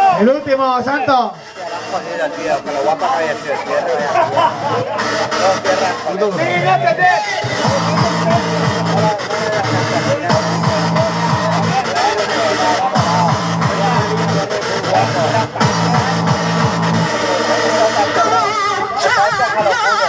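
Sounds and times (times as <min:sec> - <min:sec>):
fast electronic dance music: 0:00.0 - 0:20.0
person laughing: 0:04.0 - 0:05.2.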